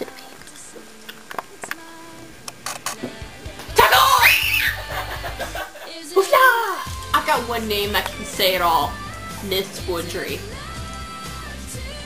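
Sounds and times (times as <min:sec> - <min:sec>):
background music: 0:00.0 - 0:12.0
girl screaming: 0:03.8 - 0:04.9.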